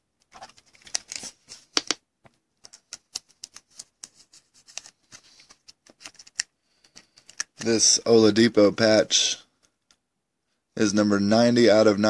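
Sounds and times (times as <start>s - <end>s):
plastic clicks and scrapes: 2.6s - 7.8s.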